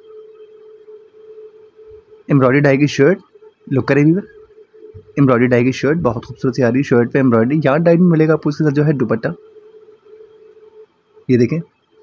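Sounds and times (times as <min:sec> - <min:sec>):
faint room noise: 0:00.0 - 0:12.0
steady single-pitch hum: 0:00.0 - 0:12.0.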